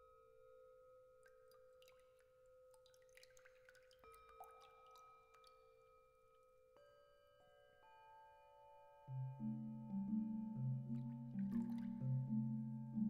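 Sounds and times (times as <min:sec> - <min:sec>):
light ticks and tinkles: 0:00.0 - 0:13.0.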